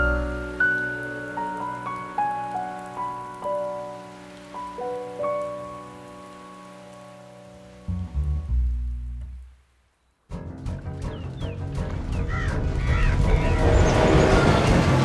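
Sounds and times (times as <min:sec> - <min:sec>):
rain falling: 0:00.0 - 0:15.0.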